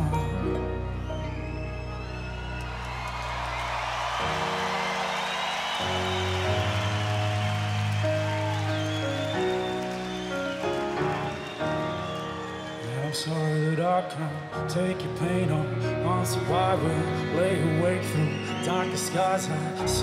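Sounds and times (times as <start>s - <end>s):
crowd cheering and applauding: 0.0s - 20.0s.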